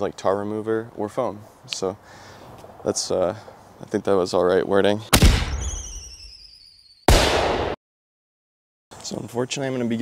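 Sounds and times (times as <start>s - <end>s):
blast-like burst: 5.2s - 6.4s, 7.1s - 7.8s
falling whistle: 5.6s - 7.1s.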